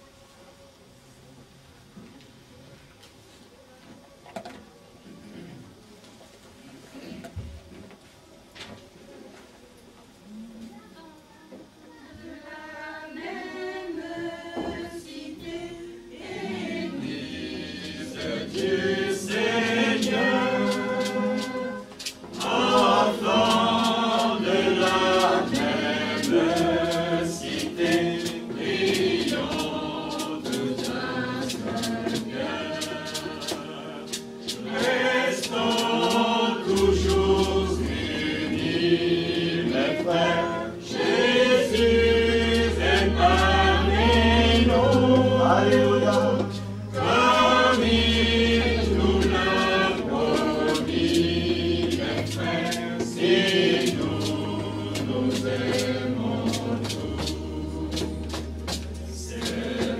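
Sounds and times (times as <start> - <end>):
choir singing a hymn: 12.2 - 59.9.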